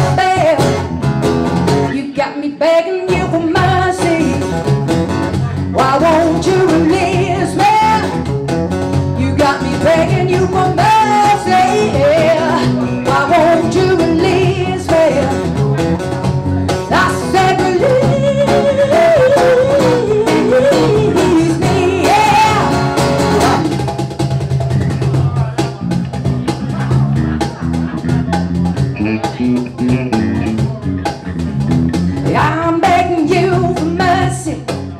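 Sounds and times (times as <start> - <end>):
woman singing: 0.0 - 0.9, 1.8 - 4.6, 5.5 - 8.3, 9.2 - 15.5, 16.7 - 23.8, 32.2 - 34.8
electric bass: 0.0 - 2.0, 3.1 - 34.9
acoustic guitar: 0.0 - 34.9
cajon: 3.1 - 34.9.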